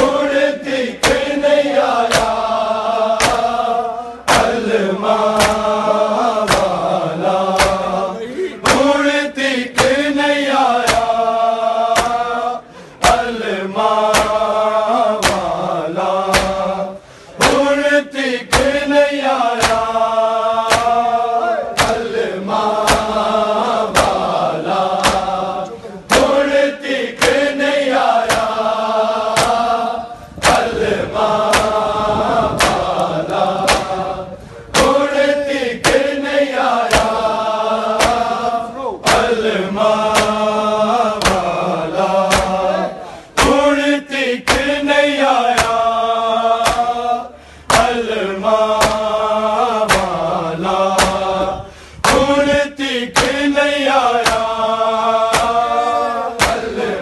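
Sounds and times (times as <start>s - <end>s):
men chanting together: 0.0s - 57.0s
hands slapping chests: 1.0s - 1.4s, 2.0s - 3.7s, 4.3s - 4.7s, 5.3s - 5.8s, 6.4s - 8.0s, 8.6s - 9.0s, 9.7s - 10.1s, 10.8s - 11.2s, 11.9s - 12.4s, 13.0s - 13.4s, 14.0s - 14.5s, 15.1s - 16.7s, 17.4s - 17.8s, 18.5s - 18.8s, 19.5s - 20.0s, 20.6s - 21.1s, 21.8s - 22.2s, 22.8s - 23.3s, 23.9s - 25.5s, 26.1s - 26.6s, 27.2s - 27.6s, 28.2s - 29.8s, 30.4s - 30.8s, 31.4s - 34.1s, 34.7s - 36.2s, 36.8s - 37.4s, 38.0s - 38.4s, 39.0s - 39.4s, 40.1s - 40.5s, 41.2s - 41.6s, 42.3s - 42.8s, 43.4s - 43.7s, 44.4s - 44.8s, 45.5s - 45.9s, 46.6s - 47.0s, 47.7s - 48.1s, 48.7s - 49.2s, 49.9s - 50.2s, 50.9s - 51.3s, 52.0s - 53.5s, 54.2s - 54.6s, 55.3s - 55.7s, 56.4s - 56.8s.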